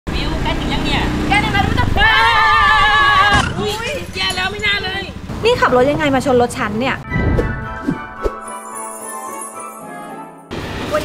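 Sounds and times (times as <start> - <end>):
motorcycle engine running: 0.1 - 7.0
voices crying out: 1.4 - 5.2
loud wavering scream: 2.0 - 4.0.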